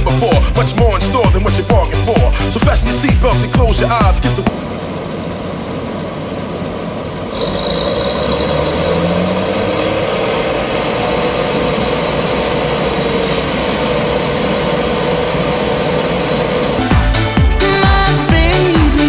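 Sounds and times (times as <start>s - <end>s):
combine harvester running: 0.0s - 19.0s
steady high whine: 0.0s - 19.0s.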